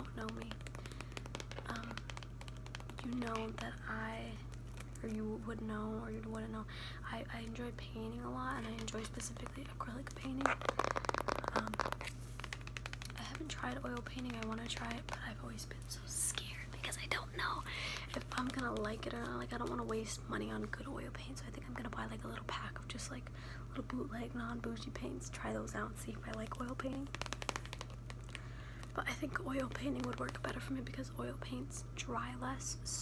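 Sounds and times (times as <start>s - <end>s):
plastic wrapping crinkling: 0.0s - 5.2s, 8.4s - 19.9s, 26.4s - 30.7s.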